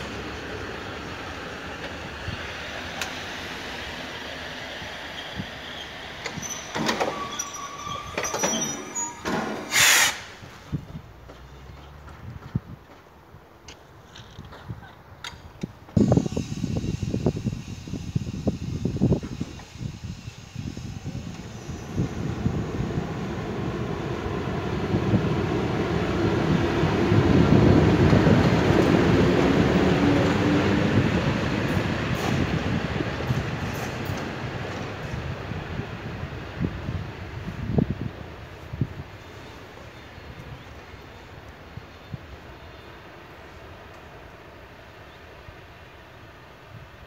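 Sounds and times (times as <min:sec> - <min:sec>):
electric locomotive rumble and whine: 0:00.0 - 0:12.2, 0:15.6 - 0:47.0.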